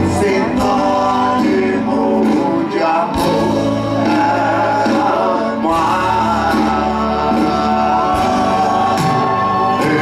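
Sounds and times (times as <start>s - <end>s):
drums: 0.0s - 10.0s
guitar: 0.0s - 10.0s
man singing: 0.0s - 10.0s.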